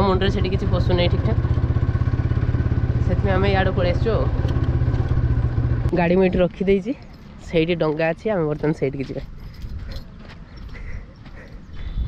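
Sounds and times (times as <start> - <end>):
scooter engine running: 0.0 - 6.4.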